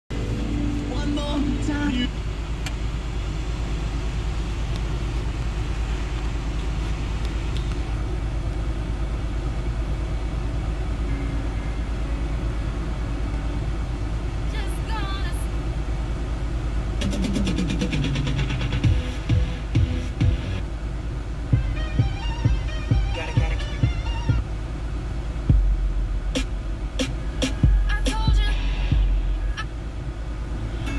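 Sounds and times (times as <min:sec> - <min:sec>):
steady low rumble: 0:00.1 - 0:30.9
car radio music and voice: 0:00.3 - 0:03.3, 0:11.9 - 0:15.7, 0:21.8 - 0:25.4, 0:26.6 - 0:29.8
regular thumping beat: 0:17.0 - 0:20.6, 0:21.5 - 0:24.5, 0:25.4 - 0:29.6.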